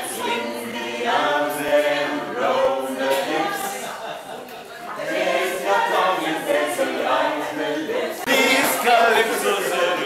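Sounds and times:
group singing without instruments: 0:00.0 - 0:10.0.

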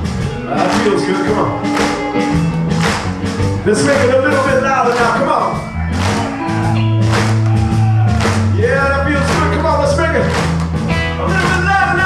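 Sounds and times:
blues-rock band playing: 0:00.0 - 0:12.0
man singing: 0:03.7 - 0:05.5, 0:08.5 - 0:10.2, 0:11.1 - 0:12.0.

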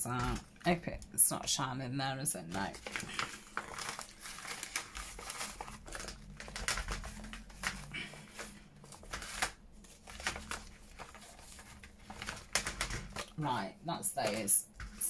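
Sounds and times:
paper rustling and crinkling: 0:02.4 - 0:15.0.

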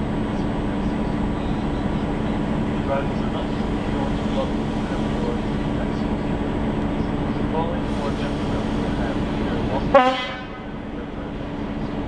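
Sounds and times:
train running hum: 0:00.0 - 0:12.0
train horn toot: 0:09.9 - 0:10.8.

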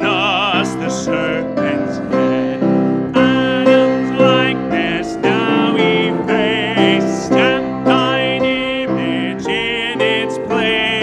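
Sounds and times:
congregation singing a hymn: 0:00.0 - 0:11.0
instrumental accompaniment: 0:00.0 - 0:11.0.

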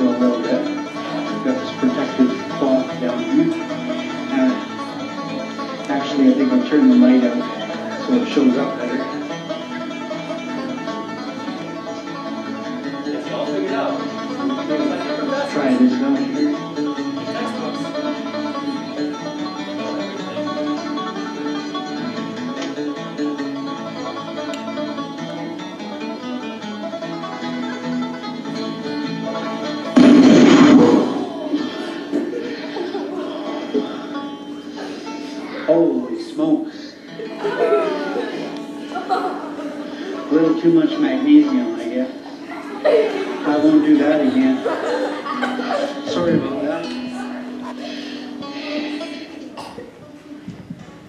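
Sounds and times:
banjo music: 0:00.0 - 0:51.0
sparkler blast: 0:30.0 - 0:31.1.

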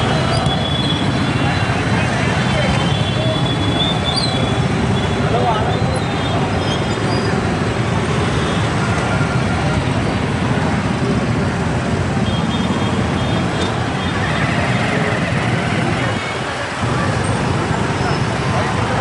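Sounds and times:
crowd voices: 0:00.0 - 0:19.0
motorcycles and cars rumbling: 0:00.0 - 0:19.0.

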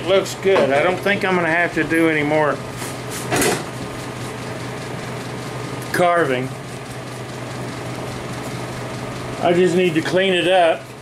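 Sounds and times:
workshop background hum: 0:00.0 - 0:11.0.

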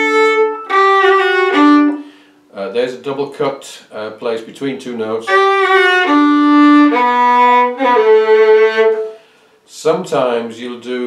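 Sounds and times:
solo fiddle playing slow notes: 0:00.0 - 0:02.2, 0:05.2 - 0:09.2.

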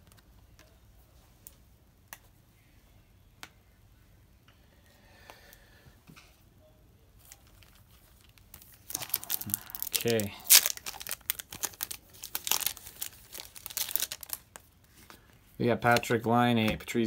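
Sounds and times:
foil wrapper crinkling: 0:07.3 - 0:15.0.

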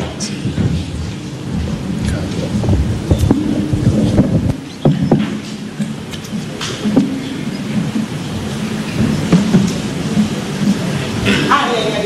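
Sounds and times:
low rumble: 0:00.4 - 0:11.1.

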